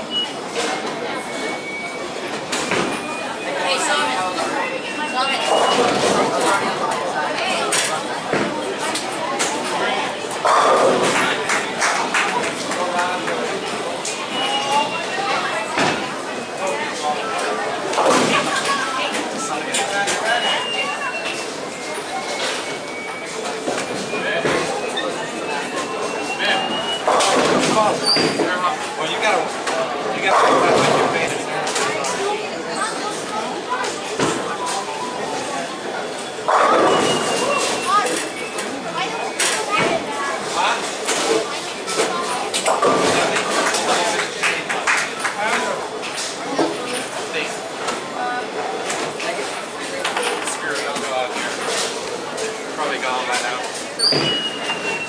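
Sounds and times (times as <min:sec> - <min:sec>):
voices chattering: 0:00.0 - 0:55.0.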